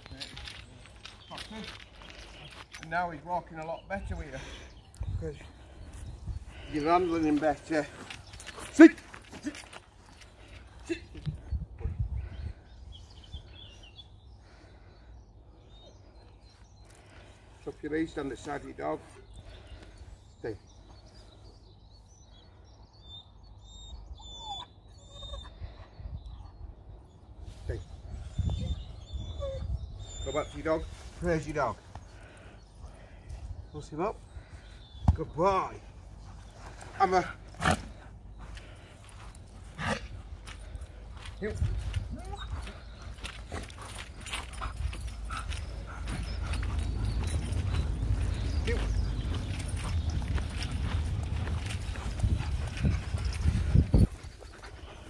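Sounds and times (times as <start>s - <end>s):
birds chirping: 0.0s - 55.0s
wind rumble on microphone: 11.2s - 13.6s, 26.0s - 30.2s, 44.7s - 55.0s
footsteps on grass: 38.4s - 55.0s.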